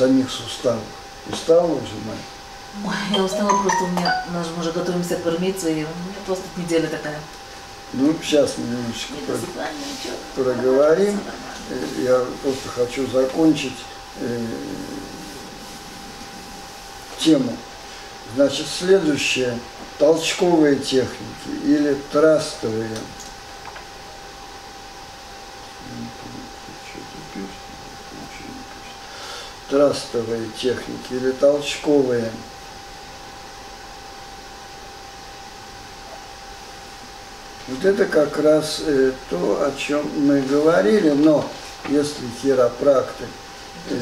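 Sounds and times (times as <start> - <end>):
faint steady whine: 0.0 - 44.0
room hiss: 0.0 - 44.0
faint thin steady tone: 3.1 - 4.9.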